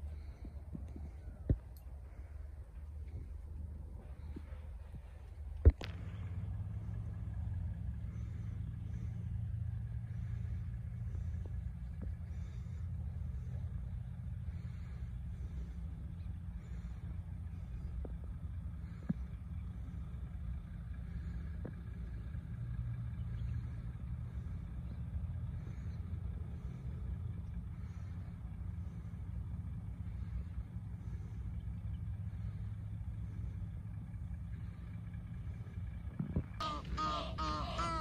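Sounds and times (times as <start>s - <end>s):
steady low rumble: 0.0s - 38.0s
geese honking: 36.6s - 38.0s.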